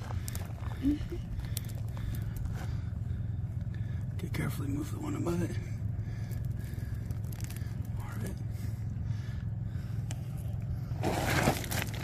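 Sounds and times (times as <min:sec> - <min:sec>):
steady low rumble: 0:00.0 - 0:12.0
grit clicks: 0:06.3 - 0:08.0
fingers scraping gravelly dirt: 0:11.0 - 0:12.0.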